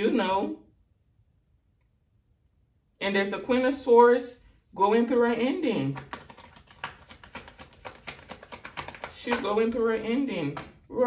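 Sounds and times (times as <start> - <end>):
cards clicking and tapping: 5.9 - 10.9.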